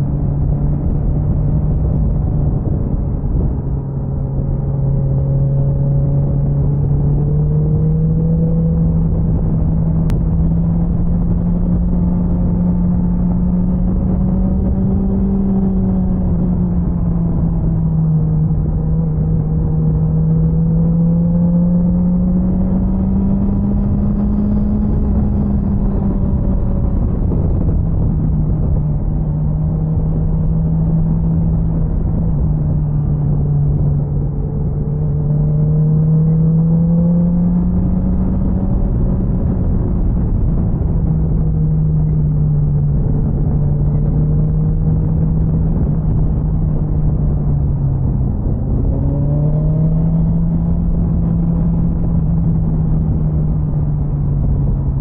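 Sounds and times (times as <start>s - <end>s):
motorcycle engine cruising: 0.0s - 55.0s
wind noise rushing: 0.0s - 55.0s.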